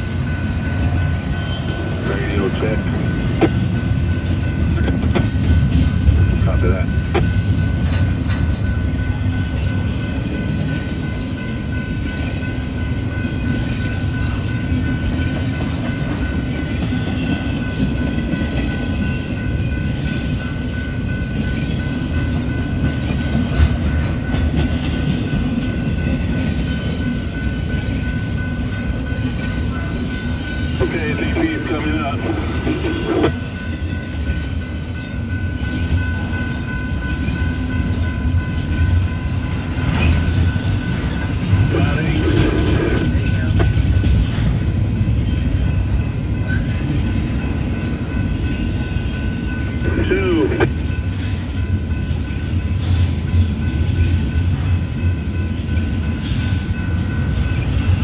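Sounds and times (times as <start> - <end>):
train rumble: 0.0 - 58.0.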